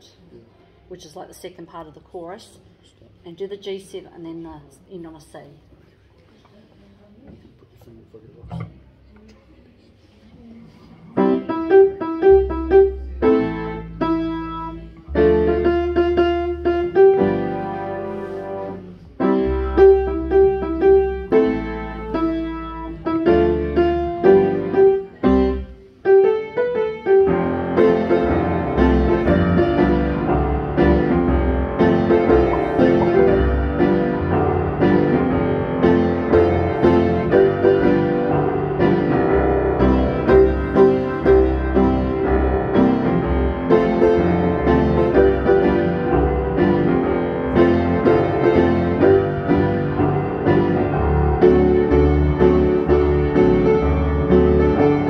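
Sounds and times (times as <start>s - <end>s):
upright piano chords: 11.2s - 55.0s
electric bass guitar: 28.8s - 36.0s.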